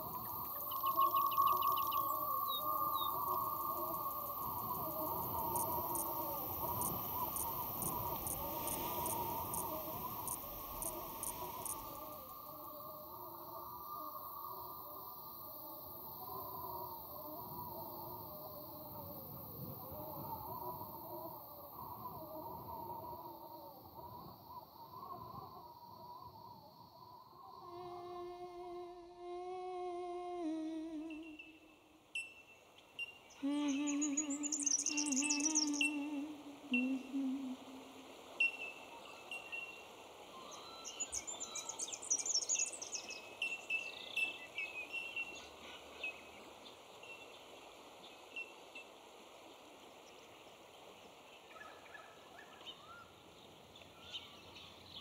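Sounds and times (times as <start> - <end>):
crickets chirping: 0.0 - 55.0
high bird chirping: 33.0 - 36.1.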